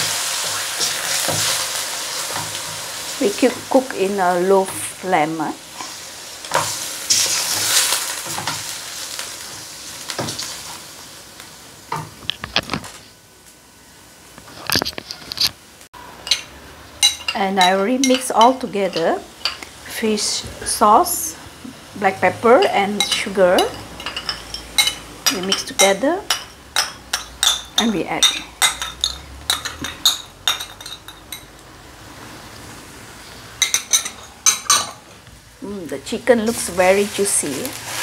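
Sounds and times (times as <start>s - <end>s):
wooden spatula scraping a wok: 5.7s - 8.7s, 36.5s - 38.0s
metal spoon clinking on bowl: 23.0s - 31.5s.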